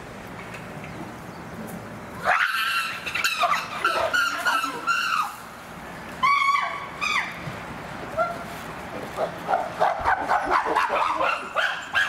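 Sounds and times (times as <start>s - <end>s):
chimpanzees calling: 2.2s - 5.5s, 6.2s - 7.4s.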